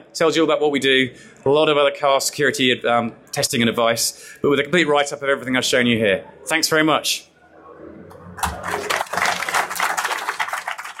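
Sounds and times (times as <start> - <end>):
audience applauding: 8.4 - 11.0.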